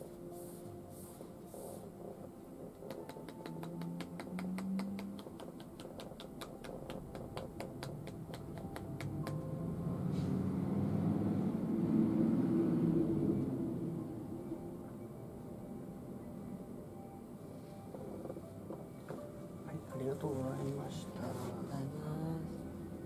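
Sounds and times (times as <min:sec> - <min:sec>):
hands tapping on head: 0:02.7 - 0:09.5.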